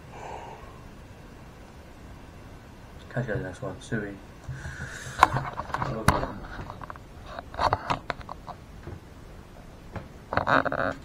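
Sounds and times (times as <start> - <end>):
room background: 0.0 - 11.0.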